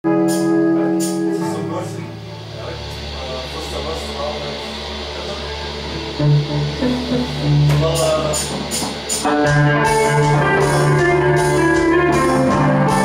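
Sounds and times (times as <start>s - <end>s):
electric guitar picked notes: 0.0s - 13.0s
bass guitar low notes: 0.1s - 13.0s.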